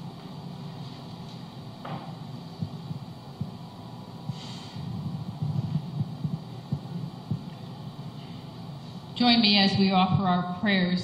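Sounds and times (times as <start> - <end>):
steady low hum: 0.0 - 11.0
soft low thumps: 1.8 - 8.1.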